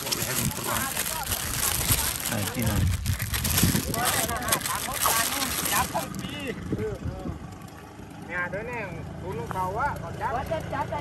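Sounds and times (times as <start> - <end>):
people talking: 0.0 - 2.9, 3.7 - 7.4
crackling rustle: 0.0 - 6.4.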